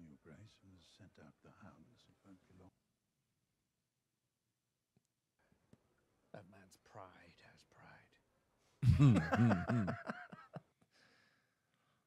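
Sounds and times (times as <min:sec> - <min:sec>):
very quiet tv dialogue: 0:00.0 - 0:12.0.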